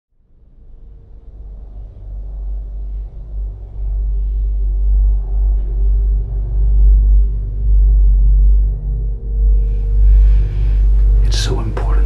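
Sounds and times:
ominous low rumbling drone: 0.2 - 12.0.

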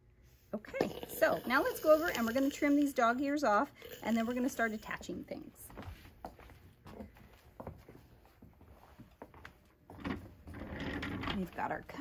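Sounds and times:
soft handling knocks and rustles: 5.7 - 11.6.

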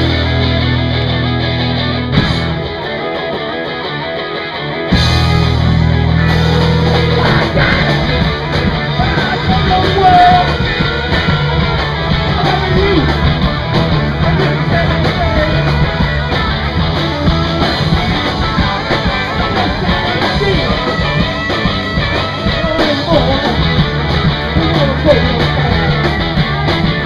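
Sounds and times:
electric guitar: 0.0 - 27.0
punk rock band playing: 0.0 - 27.0
person singing: 6.3 - 13.3, 14.0 - 16.6, 17.3 - 23.8.

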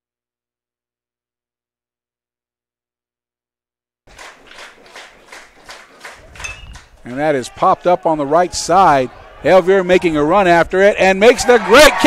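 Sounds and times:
rhythmic hand clapping: 4.1 - 7.3.

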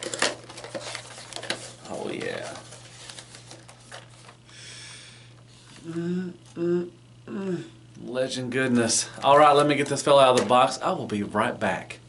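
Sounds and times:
papery rustle: 0.0 - 4.4.

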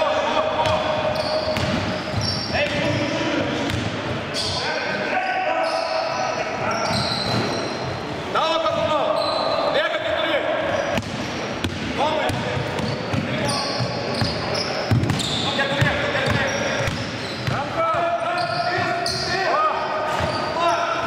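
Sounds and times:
sneakers squeaking: 0.5 - 4.9, 5.6 - 21.0
basketball bouncing on wooden floor: 1.5 - 2.9.

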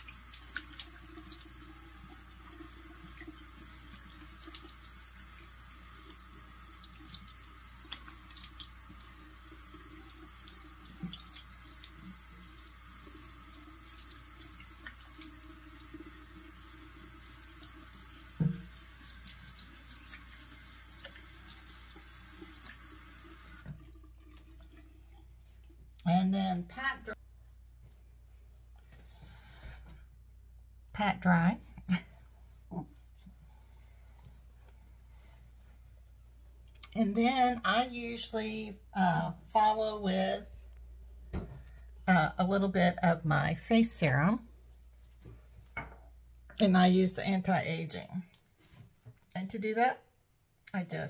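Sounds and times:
sink tap running: 0.0 - 24.9.

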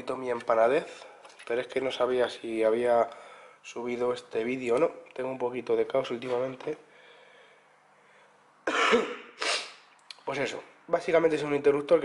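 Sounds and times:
man coughing roughly: 8.7 - 9.8.

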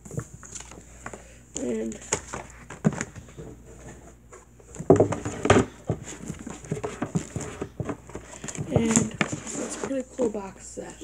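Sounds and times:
packaging knocks and clicks: 4.7 - 9.9.

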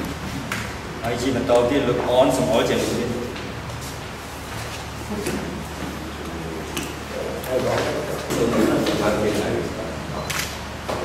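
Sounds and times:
people talking: 1.0 - 3.4, 5.1 - 10.4.

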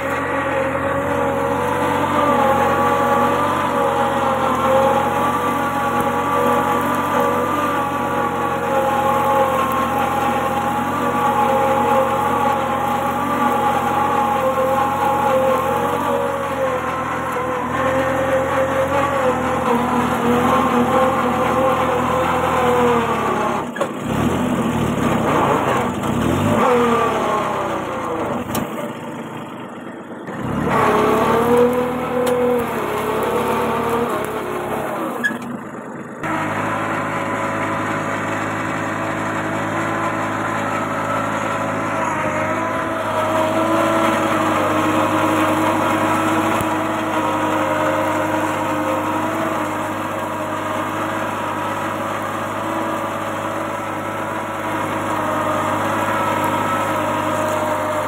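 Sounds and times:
tractor diesel engine under load: 0.0 - 58.0.

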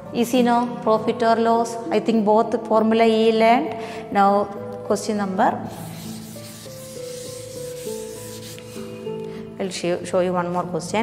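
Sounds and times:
background music with held notes: 0.0 - 11.0
duster rubbing chalkboard: 5.7 - 9.1.

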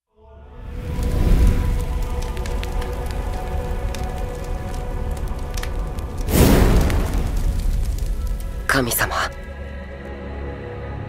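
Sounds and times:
scattered crackles: 0.7 - 9.9.

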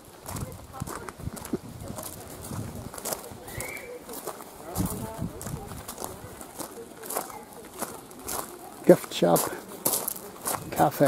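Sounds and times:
footsteps walking: 0.0 - 11.0
people talking: 0.0 - 11.0.

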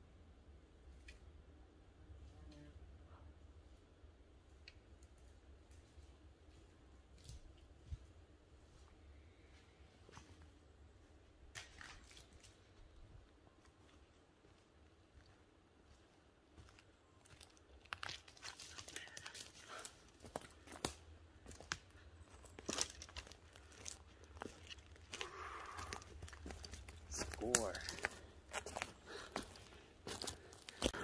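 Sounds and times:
footsteps on pine needles and twigs: 13.8 - 31.0
man speaking: 27.1 - 28.2.

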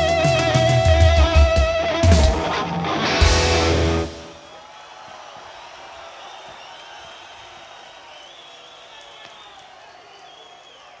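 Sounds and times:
crowd cheering and shouting: 0.0 - 11.0.

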